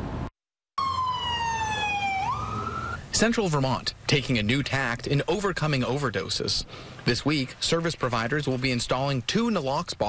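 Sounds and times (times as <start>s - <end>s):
ambulance siren wailing: 0.8s - 3.1s.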